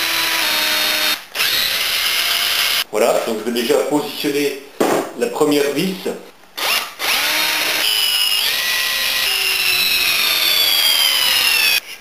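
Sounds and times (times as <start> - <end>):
cordless drill whining into wood: 0.0 - 2.8, 6.6 - 11.8.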